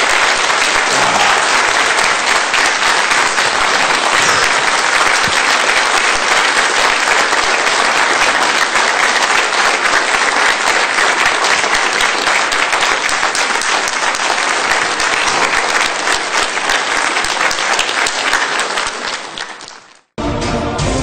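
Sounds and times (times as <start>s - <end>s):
audience applauding: 0.0s - 20.1s.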